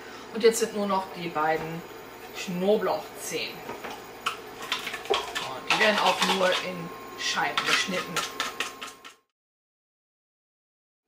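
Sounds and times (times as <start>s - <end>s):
kitchen clatter: 3.7s - 6.8s, 7.4s - 9.2s.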